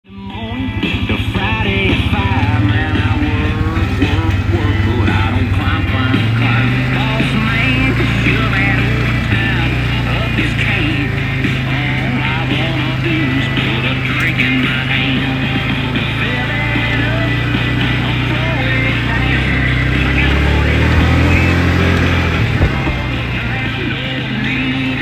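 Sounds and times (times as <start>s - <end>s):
rock music with singing: 0.0s - 25.0s
atv engine running: 0.1s - 25.0s.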